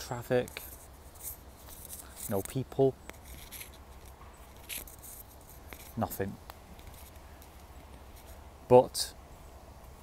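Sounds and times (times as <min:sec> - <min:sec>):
footsteps in dry leaves: 0:00.0 - 0:08.5.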